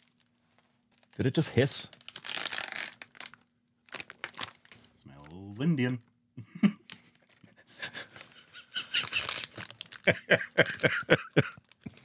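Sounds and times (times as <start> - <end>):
foil wrapper crinkling: 0.0 - 1.3, 1.9 - 5.4, 6.8 - 12.0
men laughing wheezily: 7.5 - 11.6.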